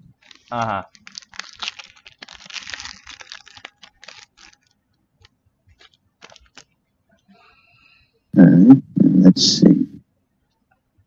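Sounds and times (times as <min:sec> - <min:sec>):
foil wrapper crinkling and tearing: 0:00.1 - 0:04.8, 0:05.7 - 0:06.7.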